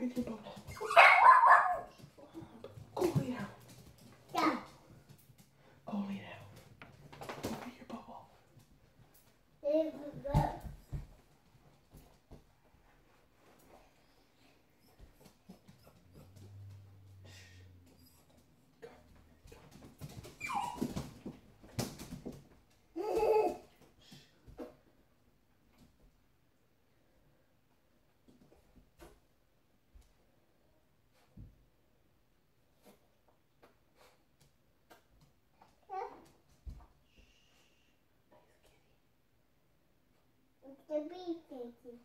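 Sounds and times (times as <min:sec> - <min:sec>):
dog whining: 0:20.4 - 0:21.0.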